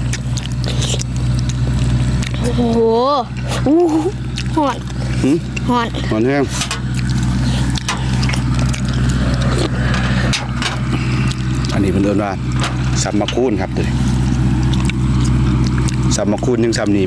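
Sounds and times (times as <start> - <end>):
low engine hum: 0.0 - 17.0
people eating: 0.0 - 17.0.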